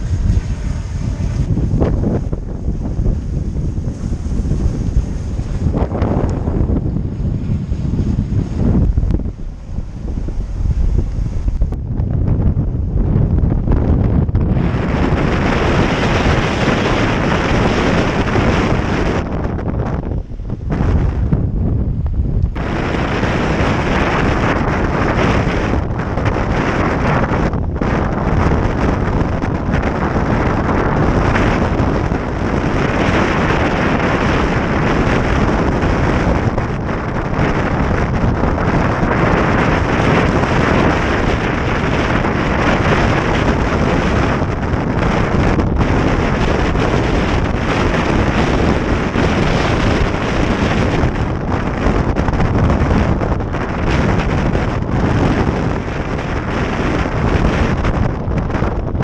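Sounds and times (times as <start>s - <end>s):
strong wind on microphone: 0.0s - 59.0s
waves breaking against hull: 0.0s - 59.0s.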